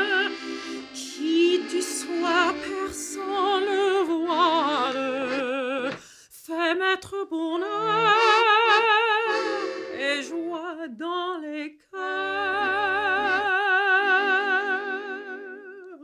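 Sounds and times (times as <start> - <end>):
piano accordion accompaniment: 0.0 - 6.0, 7.6 - 10.4, 12.0 - 15.5
woman singing with vibrato: 0.0 - 16.0.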